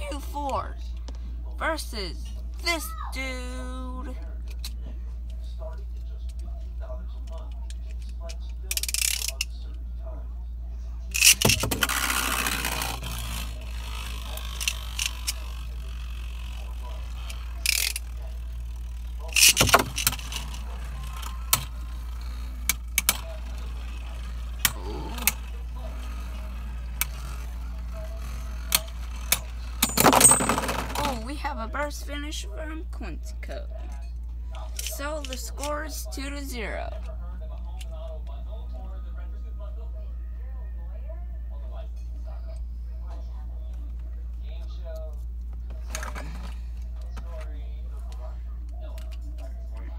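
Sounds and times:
spinning tops scraping: 11.1 - 31.0.

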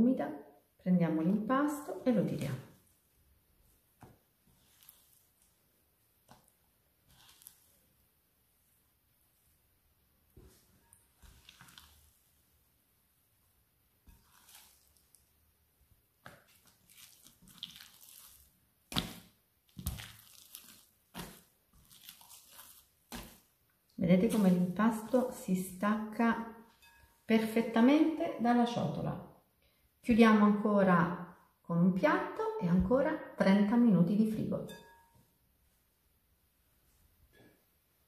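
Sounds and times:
wet dough squelching and slapping: 1.2 - 27.1.

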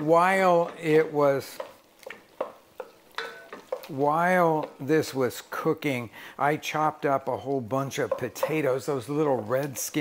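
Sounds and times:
wooden spatula scraping pot: 0.0 - 5.7, 7.4 - 10.0.

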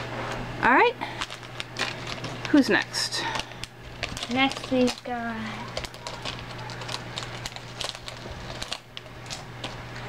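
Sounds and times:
plastic packet crinkling: 1.1 - 10.0.

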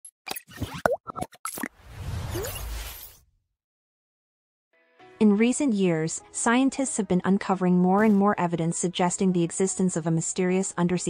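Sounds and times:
cartoon pops and plops: 0.3 - 1.7.

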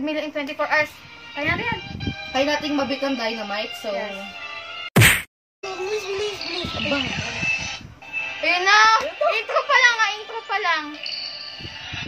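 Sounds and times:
loud thump: 5.0 - 5.3.

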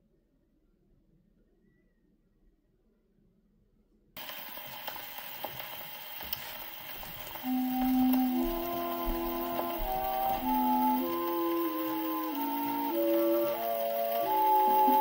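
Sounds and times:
record surface hiss and crackle: 4.2 - 15.0
orchestral music: 7.0 - 15.0.

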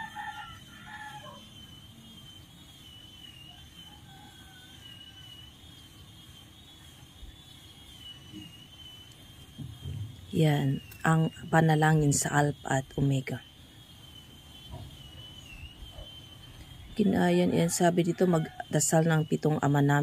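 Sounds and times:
distant bird call: 0.0 - 19.8
faint high steady whine: 0.0 - 20.0.

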